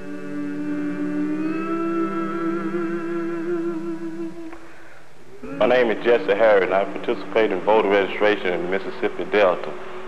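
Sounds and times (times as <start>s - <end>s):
hummed note: 0.0s - 9.2s.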